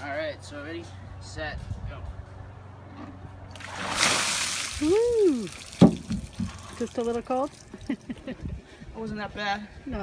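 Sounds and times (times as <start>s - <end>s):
water pouring and splashing: 3.5s - 7.9s.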